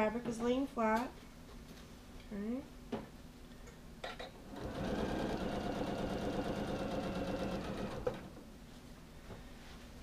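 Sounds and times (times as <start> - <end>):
sewing machine stitching: 4.5 - 8.4.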